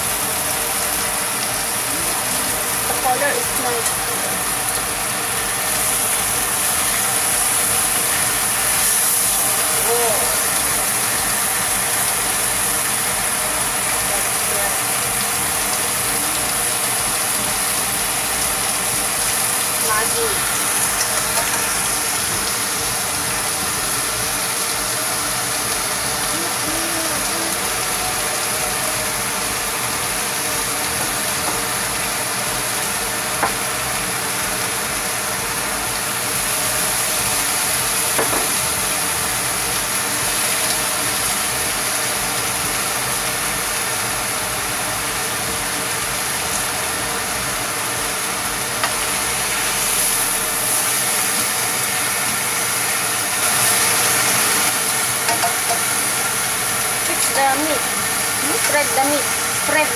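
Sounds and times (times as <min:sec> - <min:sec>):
meat and onions sizzling in a wok: 0:00.0 - 0:59.9.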